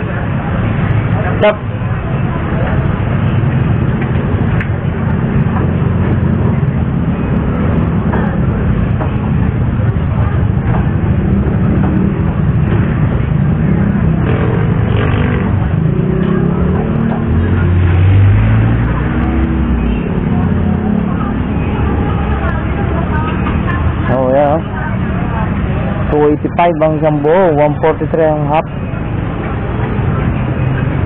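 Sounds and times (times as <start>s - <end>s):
indistinct voices: 0.0s - 31.0s
street traffic rumble: 0.0s - 31.0s.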